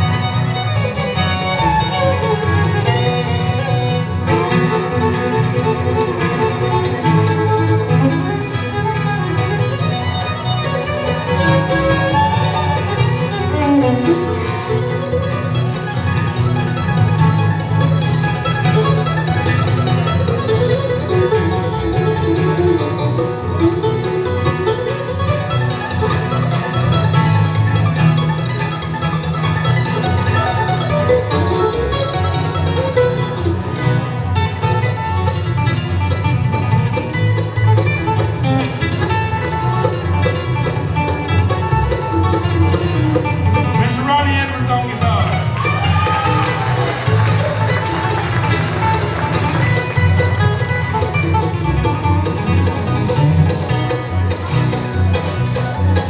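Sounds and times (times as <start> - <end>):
acoustic guitar: 0.0 - 56.0
banjo: 0.0 - 56.0
electric bass guitar: 0.0 - 56.0
fiddle: 0.0 - 56.0
mandolins: 0.0 - 56.0.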